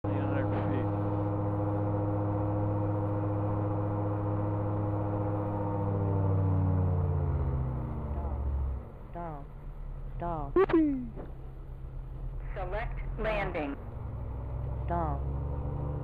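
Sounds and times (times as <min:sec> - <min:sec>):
aircraft engine and propeller droning: 0:00.1 - 0:09.1.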